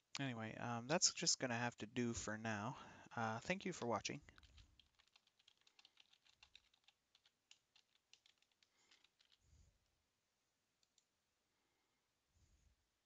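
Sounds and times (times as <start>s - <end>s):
typing on computer keyboard: 3.6s - 9.4s.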